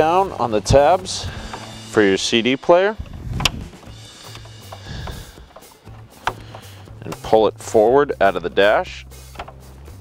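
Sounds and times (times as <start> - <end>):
quiet background music: 0.0 - 10.0
plastic clicks and knocks: 4.3 - 7.2, 9.3 - 9.6.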